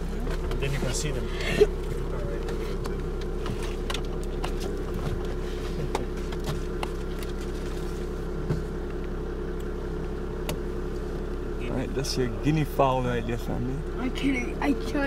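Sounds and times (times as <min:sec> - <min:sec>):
vehicle engine idling: 0:00.0 - 0:15.0.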